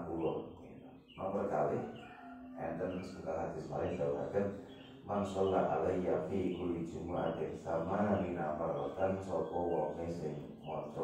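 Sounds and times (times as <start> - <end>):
man talking into a microphone: 0.0 - 11.0.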